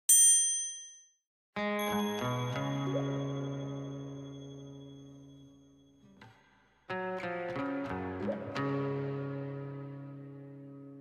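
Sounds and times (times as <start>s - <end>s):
background music: 1.6s - 5.6s, 6.9s - 11.0s
bright chime ringing: 1.8s - 6.0s.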